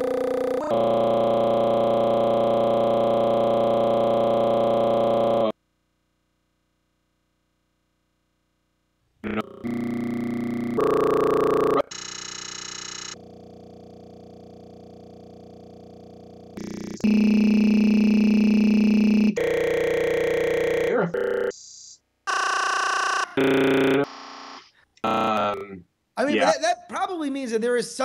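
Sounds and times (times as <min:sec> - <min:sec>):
flat buzzing digital tones: 0:00.0 - 0:05.5, 0:09.2 - 0:21.5, 0:22.3 - 0:25.7.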